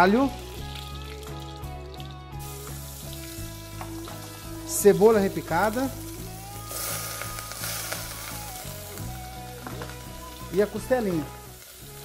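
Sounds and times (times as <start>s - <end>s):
background music: 0.0s - 12.0s
garlic sizzling in frying pan: 0.0s - 12.0s.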